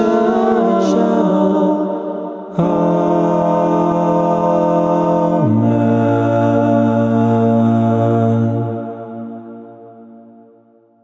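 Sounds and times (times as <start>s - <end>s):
male a cappella choir chord: 0.0s - 10.1s.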